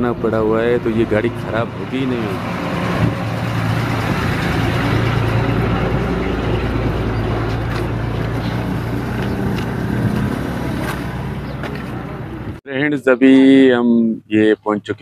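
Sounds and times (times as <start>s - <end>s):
heavy vehicle engine idling: 0.0s - 9.8s.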